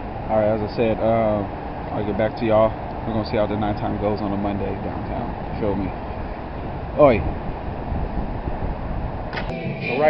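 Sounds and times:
outdoor background rumble: 0.0s - 10.0s
sharp click: 9.3s - 9.6s.

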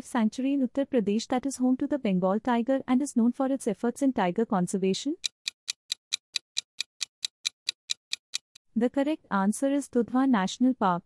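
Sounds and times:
fast clock-like ticking: 5.2s - 8.6s.

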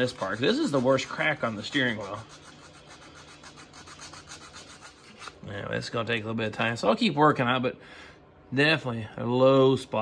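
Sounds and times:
sandpaper rasping by hand: 0.0s - 5.4s.

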